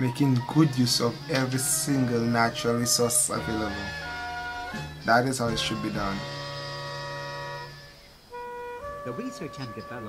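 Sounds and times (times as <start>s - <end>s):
soft held music chord: 0.0s - 10.0s.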